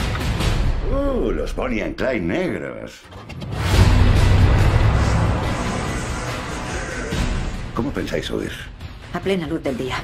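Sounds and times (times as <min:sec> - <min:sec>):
music: 0:00.0 - 0:02.0, 0:03.0 - 0:10.0.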